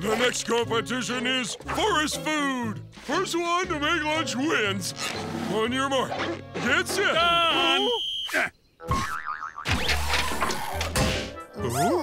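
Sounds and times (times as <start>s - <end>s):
wobbling warbling tone: 8.8s - 9.9s.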